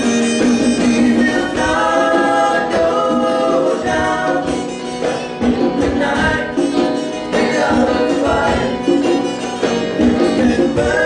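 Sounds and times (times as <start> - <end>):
young men singing together: 0.9 - 11.0.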